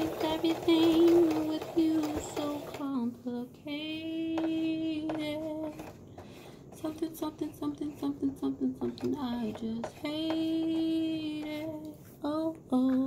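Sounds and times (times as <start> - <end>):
woman singing unaccompanied: 0.0 - 6.0, 6.7 - 13.0.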